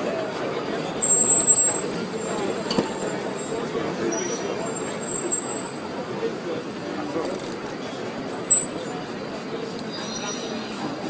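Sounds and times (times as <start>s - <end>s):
murmur of voices: 0.0s - 11.0s
traffic noise: 0.0s - 11.0s.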